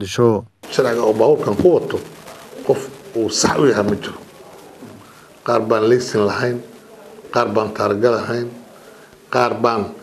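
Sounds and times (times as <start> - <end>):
man speaking: 0.0 - 4.4, 5.4 - 8.6, 9.3 - 10.0.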